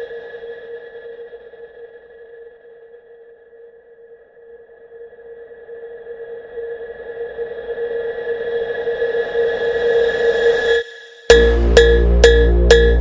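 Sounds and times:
held electronic synth chord: 0:11.3 - 0:13.0.

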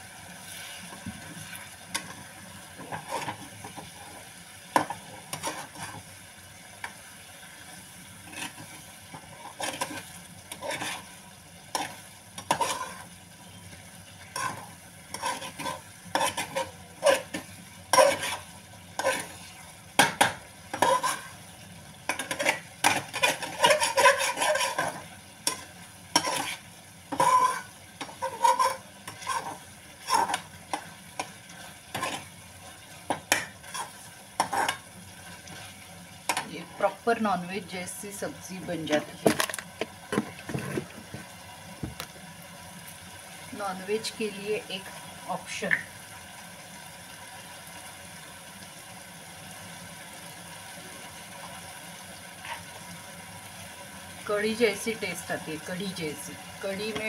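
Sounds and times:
curry sizzling: 0:00.0 - 0:57.0
spoon scraping and clinking pan: 0:11.7 - 0:13.0, 0:14.4 - 0:18.4, 0:20.0 - 0:21.3, 0:22.1 - 0:30.8, 0:33.1 - 0:34.8.

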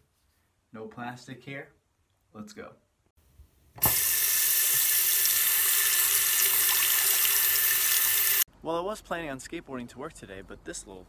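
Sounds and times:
tap running into sink: 0:03.8 - 0:04.9
razor rinsed under water: 0:03.8 - 0:08.5.

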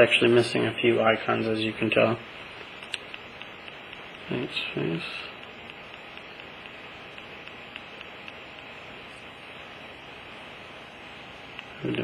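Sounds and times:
steady hiss: 0:00.0 - 0:12.0
stylus tapping touchscreen: 0:02.6 - 0:04.5, 0:05.3 - 0:09.3.

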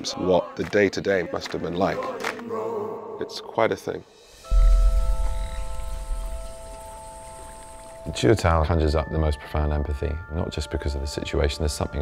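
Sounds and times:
steady high tones: 0:03.9 - 0:09.2
frogs croaking: 0:04.1 - 0:08.2.

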